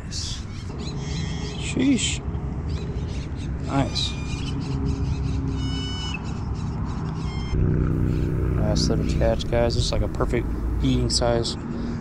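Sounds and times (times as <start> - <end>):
vehicle engine hum: 0.0 - 12.0
high bird calls: 0.1 - 11.0
steady low rumble: 7.9 - 11.5.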